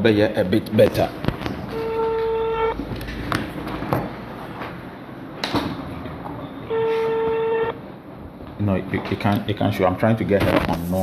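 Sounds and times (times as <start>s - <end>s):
phone call tone beep: 1.7s - 2.8s, 6.6s - 7.8s.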